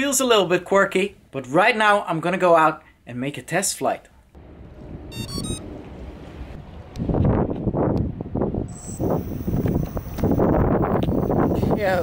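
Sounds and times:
high electronic beeps: 5.1s - 5.6s, 8.7s - 11.7s
wind buffeting microphone: 5.7s - 12.0s.

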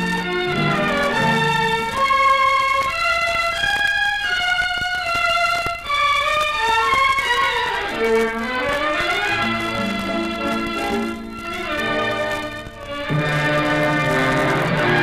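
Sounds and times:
orchestral accompaniment: 0.0s - 15.0s
solo violin melody: 0.0s - 15.0s.

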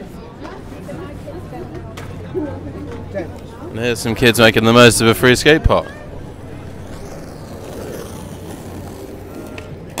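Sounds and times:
skateboard wheels rolling on asphalt: 0.0s - 10.0s.

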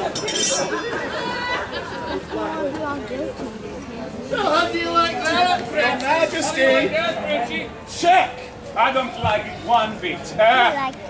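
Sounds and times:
swords clashing: 0.0s - 0.8s
crowd chatter: 0.0s - 11.0s.

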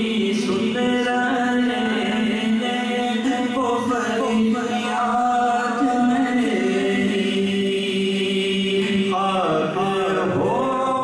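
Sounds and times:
men singing unaccompanied: 0.0s - 11.0s.

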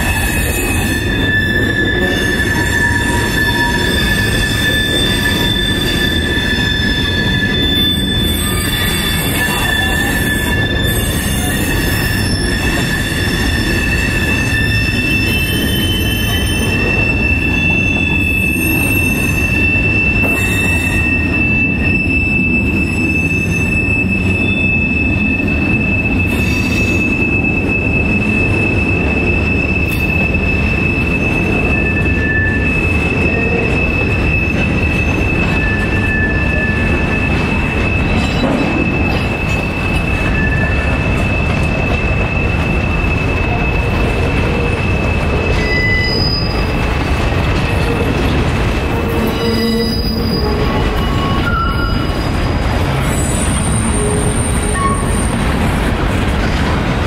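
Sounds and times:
high wheel squeal: 0.0s - 57.0s
train wheels rumbling on rail: 0.0s - 57.0s.

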